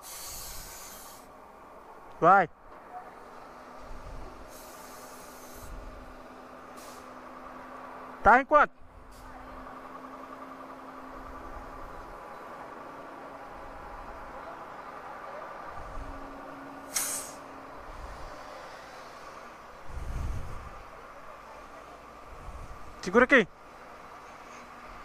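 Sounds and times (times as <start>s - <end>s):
sharp hiss of air: 0.0s - 1.3s, 3.9s - 6.1s, 6.7s - 7.2s, 16.8s - 20.8s.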